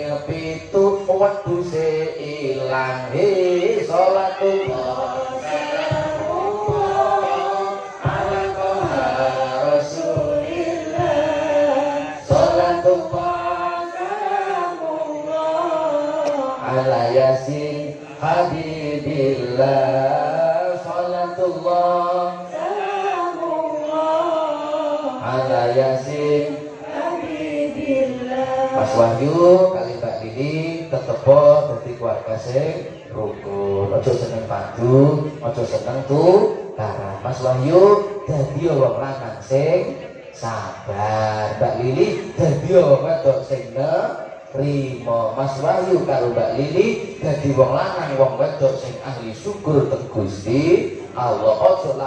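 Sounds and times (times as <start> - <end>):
man chanting into a microphone: 0.0 - 52.0.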